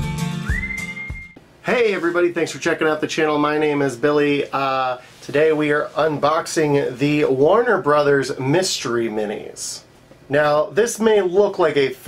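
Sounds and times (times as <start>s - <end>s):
whistled melody: 0.0s - 1.4s.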